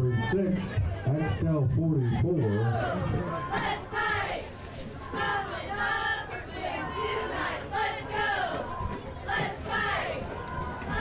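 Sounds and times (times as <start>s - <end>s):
cheerleaders chanting in unison: 0.1s - 11.0s.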